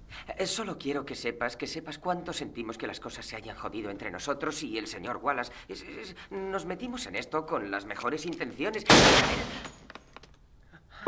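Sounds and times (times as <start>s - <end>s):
handgun shot: 8.9s - 9.8s.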